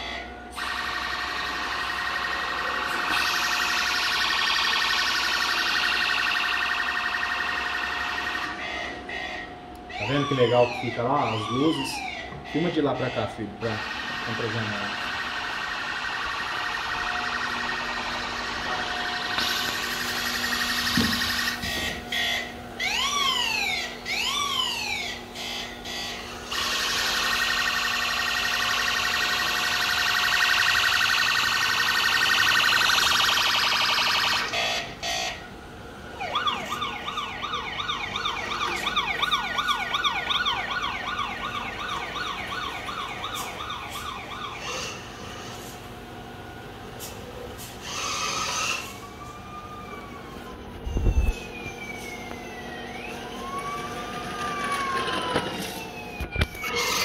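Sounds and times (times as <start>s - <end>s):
toy electronic siren: 0.0s - 35.5s, 36.1s - 45.7s, 47.0s - 57.0s.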